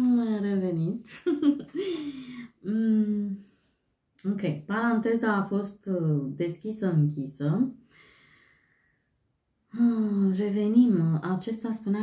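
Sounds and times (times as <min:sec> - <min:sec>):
woman speaking: 0:00.0 - 0:03.4, 0:04.2 - 0:07.8, 0:09.8 - 0:12.0
faint breath out: 0:01.8 - 0:02.6, 0:07.9 - 0:09.0.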